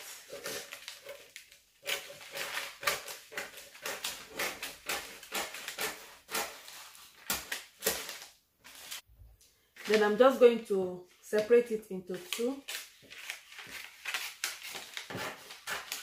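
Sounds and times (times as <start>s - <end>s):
scissors cutting paper: 0.0s - 8.2s, 12.2s - 16.0s.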